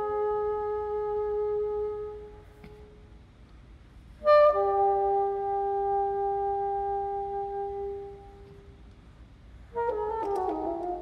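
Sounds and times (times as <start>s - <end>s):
solo bassoon held notes: 0.0s - 3.0s, 4.2s - 8.7s, 9.7s - 11.0s.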